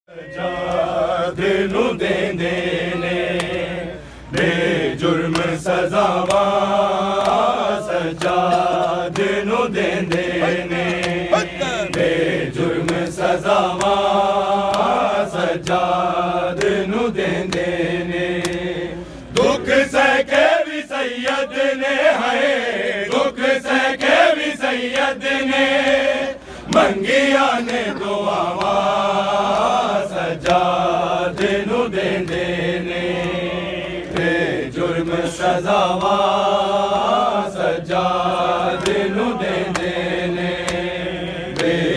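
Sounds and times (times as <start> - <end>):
men chanting in unison: 0.1 - 41.9
rhythmic chest slaps: 0.4 - 41.9.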